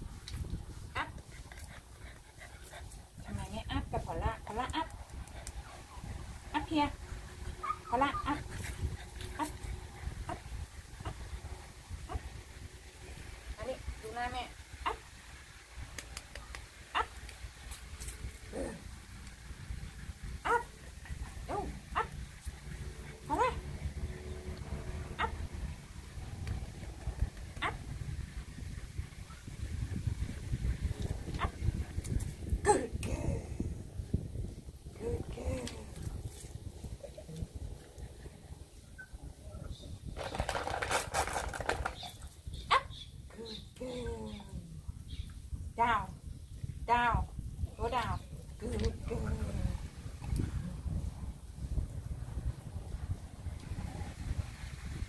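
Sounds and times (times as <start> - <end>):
puppy yipping: 7.6 - 8.4.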